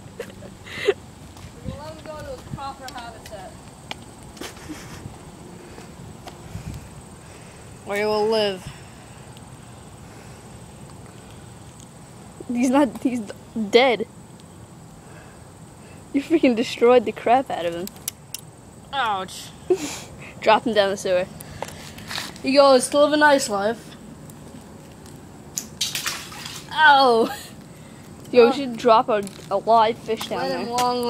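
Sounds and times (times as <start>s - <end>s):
fish splashing into water: 25.5s - 26.8s.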